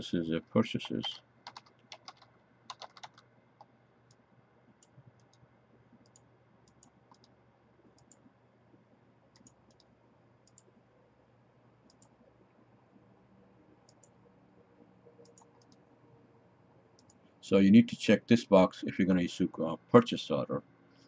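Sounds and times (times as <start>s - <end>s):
typing on computer keyboard: 0.8s - 3.3s, 6.0s - 7.3s, 9.4s - 10.6s.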